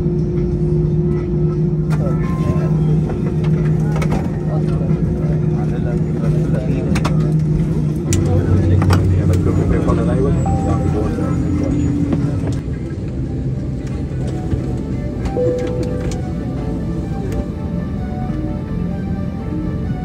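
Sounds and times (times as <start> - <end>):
aircraft engines humming: 0.0 - 20.0
passengers talking: 0.2 - 20.0
deeper hum: 7.4 - 20.0.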